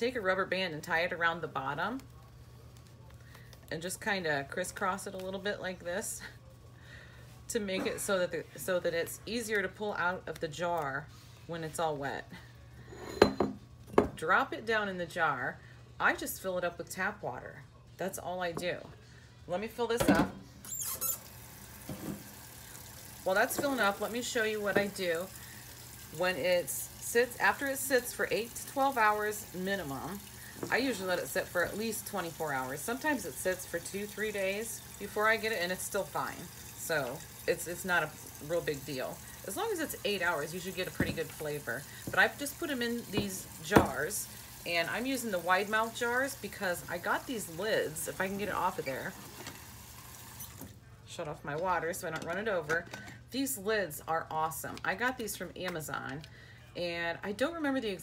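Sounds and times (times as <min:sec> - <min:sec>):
tap water running into glass jar: 0:20.7 - 0:47.4.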